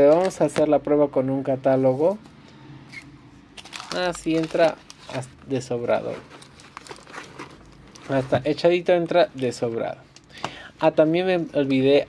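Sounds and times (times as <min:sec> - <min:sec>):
plastic wrap crinkling: 0:03.6 - 0:09.7.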